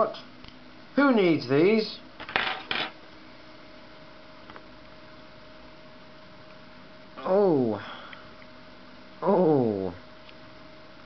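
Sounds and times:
faint hum: 0.0s - 11.0s
clatter on a hard tray: 2.2s - 3.0s.

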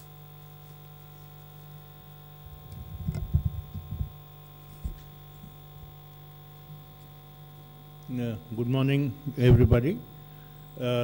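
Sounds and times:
electrical hum: 0.0s - 11.0s
microphone handling bumps: 2.4s - 5.2s, 9.4s - 9.9s.

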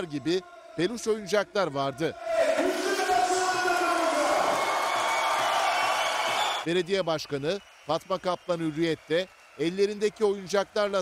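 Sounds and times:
crowd cheering and shouting: 2.0s - 6.7s.

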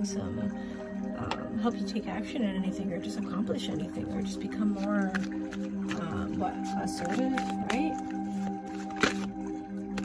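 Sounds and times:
droning background music: 0.0s - 10.0s
cards being shuffled: 6.6s - 10.0s.

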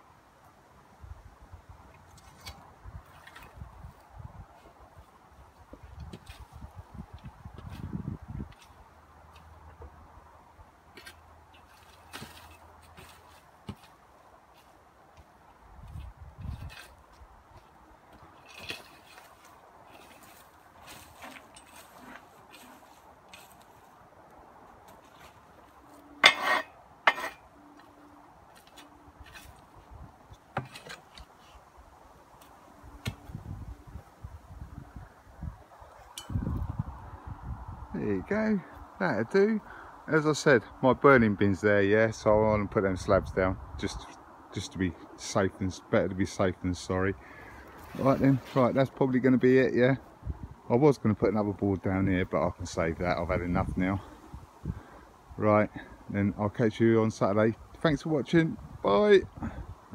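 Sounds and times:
rake scraping bark chippings: 2.0s - 4.7s, 10.9s - 14.8s, 15.9s - 24.0s, 24.8s - 31.7s, 47.6s - 50.0s.

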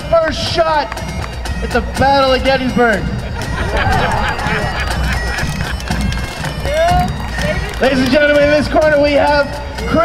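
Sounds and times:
bagpipes playing: 1.0s - 9.9s
man laughing: 3.0s - 6.4s.

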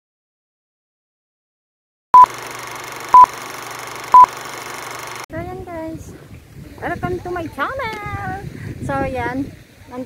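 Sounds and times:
short high beeps: 3.1s - 3.4s, 4.1s - 4.4s.

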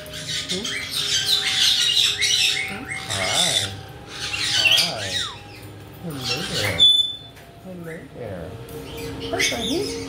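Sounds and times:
parrots squawking and chattering: 0.0s - 10.0s.

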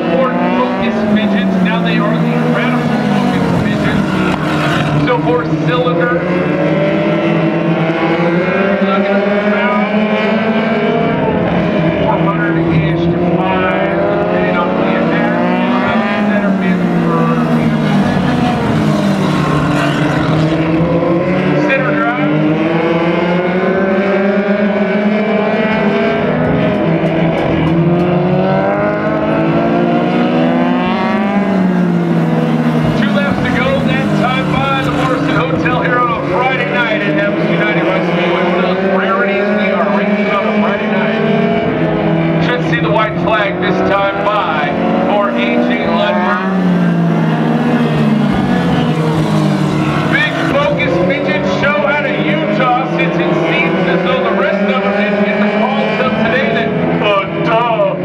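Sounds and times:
race car engines running hard: 0.0s - 58.0s.

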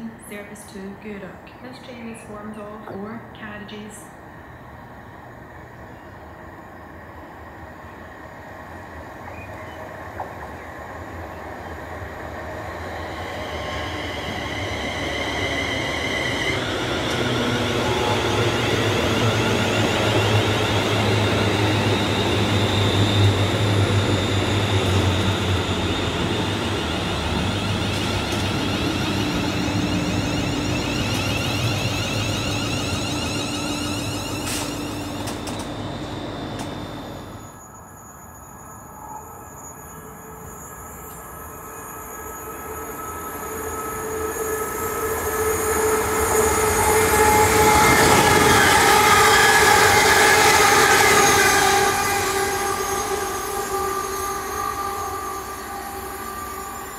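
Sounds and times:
train rail rumble: 0.0s - 37.8s, 42.4s - 56.9s.

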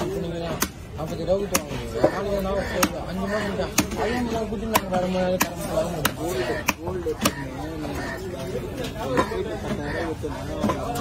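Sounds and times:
knife chopping on wooden block: 3.7s - 7.4s.

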